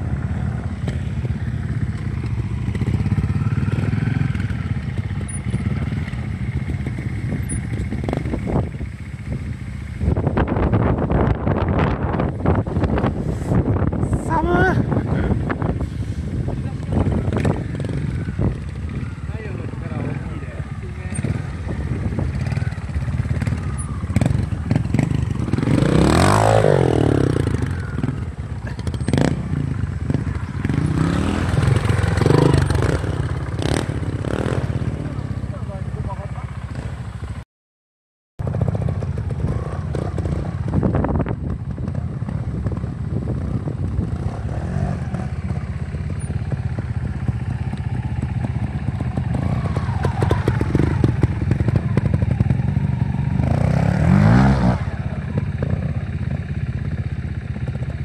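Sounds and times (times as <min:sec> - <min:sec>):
motorcycle engines at low revs: 0:00.0 - 0:37.4, 0:38.4 - 0:58.0
motorcycle throttle blips: 0:00.0 - 0:37.4, 0:38.4 - 0:58.0.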